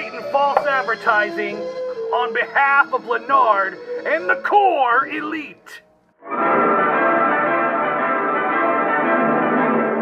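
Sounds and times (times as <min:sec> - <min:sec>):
bell-like orchestral chord: 0:06.3 - 0:10.0.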